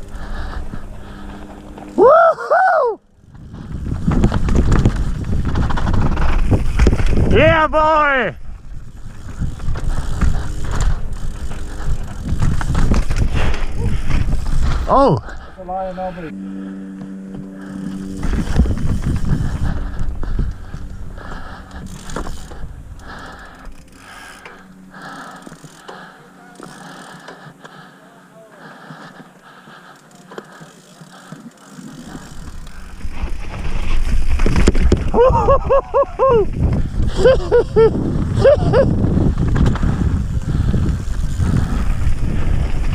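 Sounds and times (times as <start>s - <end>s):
bike knocks and rattles: 3.2s - 7.3s, 8.8s - 15.0s, 17.3s - 22.7s, 38.2s - 42.9s
bike tyres rumbling over rock: 3.2s - 15.5s, 17.4s - 27.8s, 29.8s - 35.8s, 36.5s - 42.9s.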